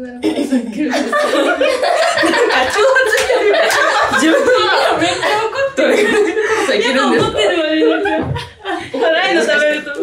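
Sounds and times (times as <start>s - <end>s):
women laughing: 0.8s - 9.6s
women talking: 4.4s - 10.0s.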